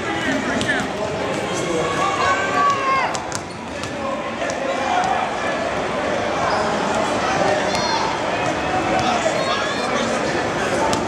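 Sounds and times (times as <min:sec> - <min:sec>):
crowd chatter: 0:00.0 - 0:11.0.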